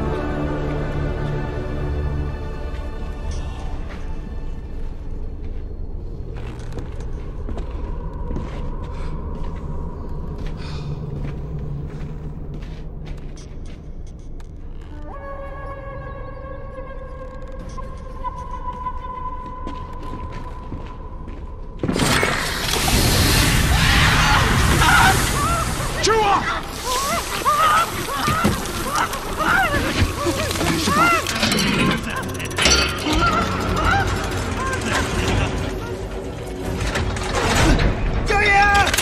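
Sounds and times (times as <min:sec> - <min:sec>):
wooden mechanism cranking and ratcheting: 0:28.2 - 0:39.0.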